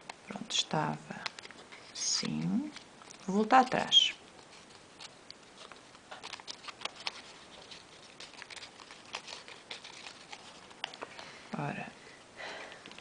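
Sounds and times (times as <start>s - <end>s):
paper crackling and rustling: 1.1s - 11.4s.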